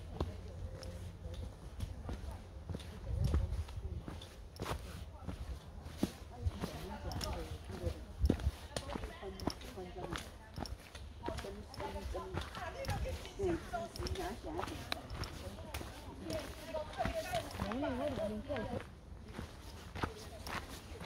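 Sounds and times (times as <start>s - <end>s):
footsteps on rocky trail: 0.0s - 21.0s
trekking pole tips tapping rock: 5.6s - 17.9s.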